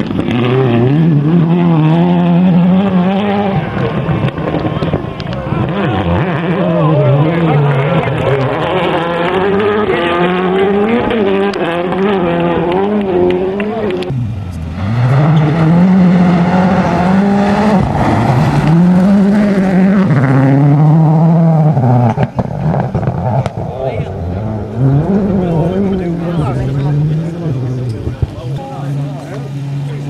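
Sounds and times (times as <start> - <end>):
rally car engine accelerating: 0.0 - 30.0.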